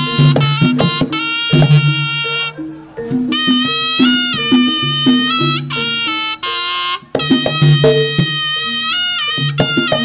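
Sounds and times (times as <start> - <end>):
low gamelan tones: 0.0 - 10.0
shawm playing reedy melody: 0.0 - 10.0.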